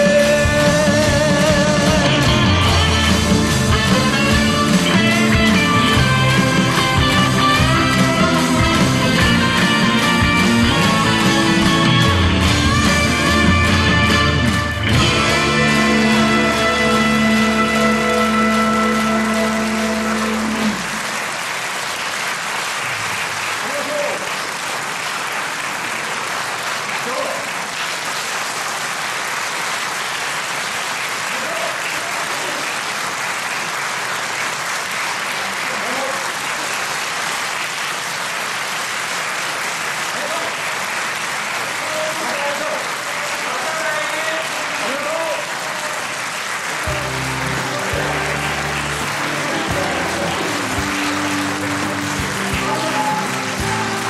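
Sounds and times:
audience applause: 0.0 - 54.0
rock band chord ringing: 0.3 - 21.0, 46.9 - 54.0.

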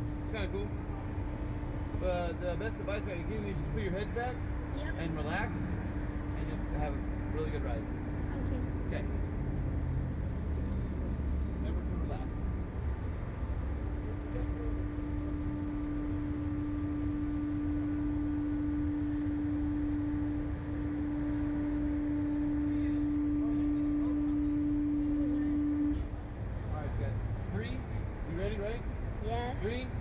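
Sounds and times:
motor tone: 0.0 - 26.9
ride machinery low hum: 0.0 - 30.0.

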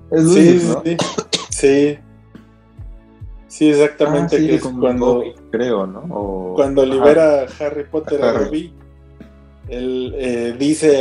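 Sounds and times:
man speaking: 0.1 - 2.0, 3.5 - 8.7, 9.7 - 11.0
sharp cough-like bursts: 0.5 - 1.7.

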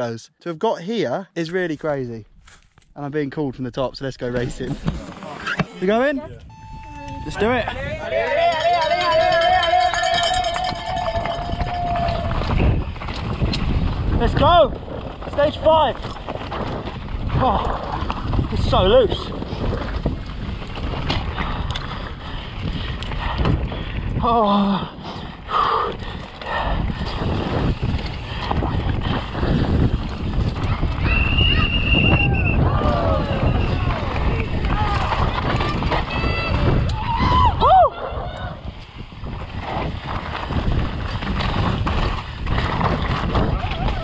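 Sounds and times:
wind on microphone: 6.2 - 44.0
bike tyres rolling on rocky trail: 7.2 - 37.8, 38.5 - 44.0.

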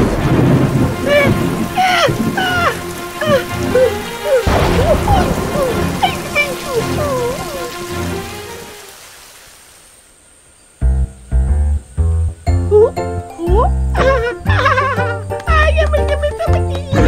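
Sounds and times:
thunder crash: 0.0 - 8.6
heavy rain falling: 0.0 - 10.6, 13.5 - 17.0.

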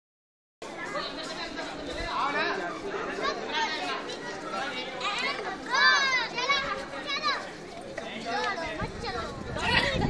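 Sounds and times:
chatter of several people: 0.6 - 10.0.

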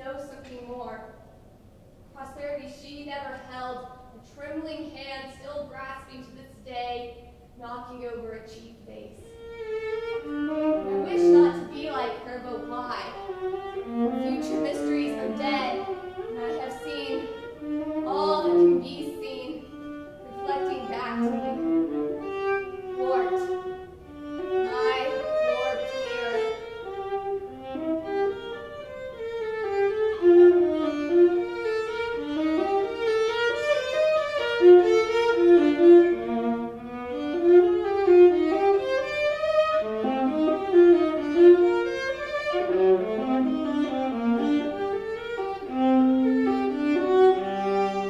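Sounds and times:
solo violin melody: 9.2 - 48.0.

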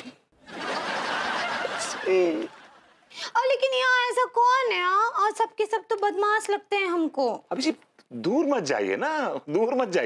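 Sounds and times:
crowd laughing: 0.4 - 3.1.

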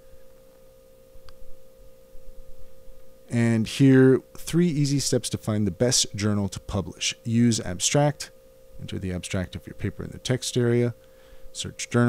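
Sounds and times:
steady mid-pitched hum: 0.0 - 12.0.

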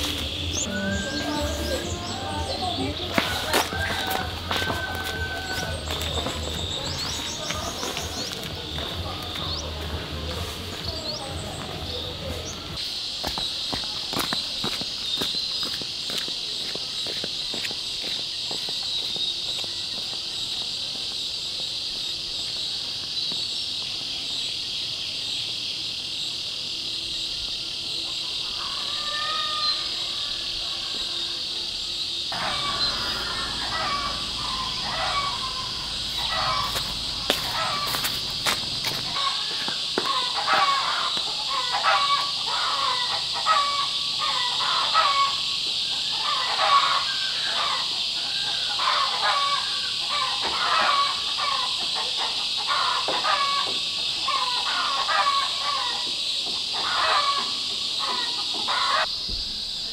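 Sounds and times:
chickens calling: 0.0 - 12.8, 32.3 - 59.1
insect chorus: 0.0 - 59.9.

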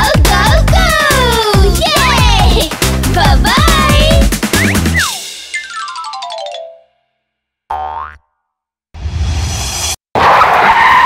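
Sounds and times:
cartoon boing: 7.7 - 8.4.

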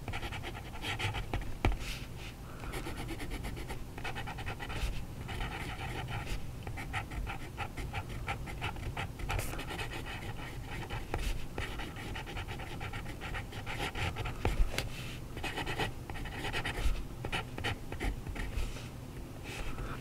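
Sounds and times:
fountain pen scratching on paper: 0.1 - 1.4, 2.8 - 14.6, 15.4 - 18.5.

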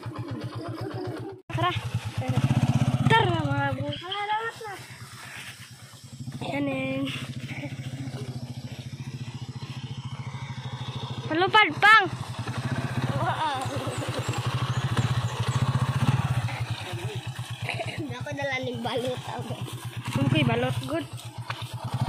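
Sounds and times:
motorcycle engine at low revs: 0.0 - 22.0
voices calling out: 0.0 - 22.0.

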